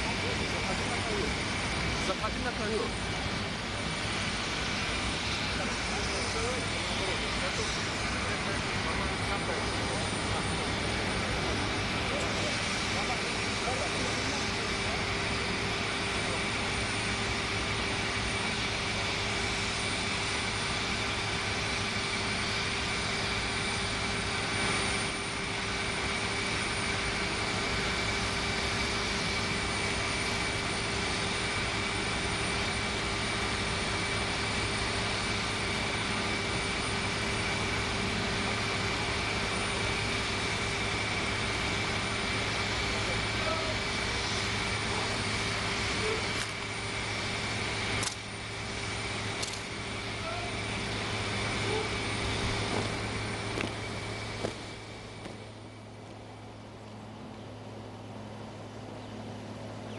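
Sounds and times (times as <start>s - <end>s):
aircraft engine rumble and whine: 0.0s - 59.9s.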